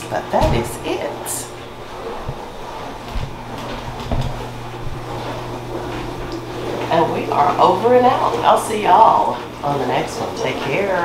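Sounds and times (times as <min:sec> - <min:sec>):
dishwasher running: 0:00.0 - 0:11.0
soft low thumps: 0:00.3 - 0:07.5.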